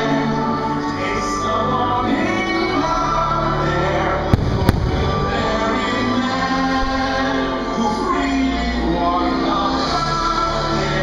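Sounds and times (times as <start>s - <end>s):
fireworks show music: 0.0s - 11.0s
firework shells bursting: 4.3s - 5.4s.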